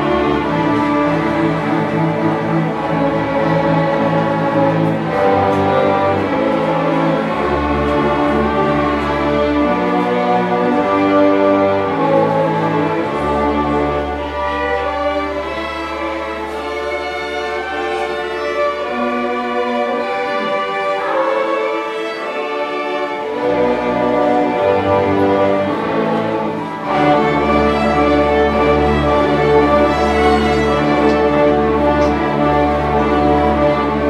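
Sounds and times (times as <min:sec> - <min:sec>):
string orchestra playing chords: 0:00.0 - 0:34.0.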